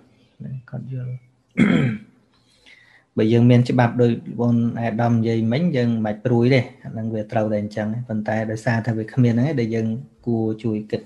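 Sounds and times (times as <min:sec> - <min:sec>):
man talking: 0:00.4 - 0:02.0, 0:03.2 - 0:11.0
man clearing throat: 0:01.6 - 0:02.1.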